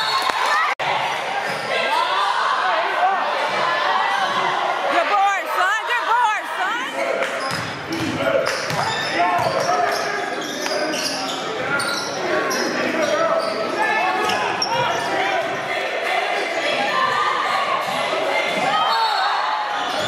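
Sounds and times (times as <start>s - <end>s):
crowd and player voices echoing: 0.0s - 20.0s.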